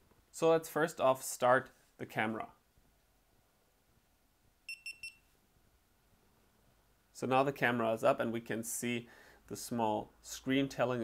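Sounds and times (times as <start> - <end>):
high electronic beeps: 4.7 - 5.2.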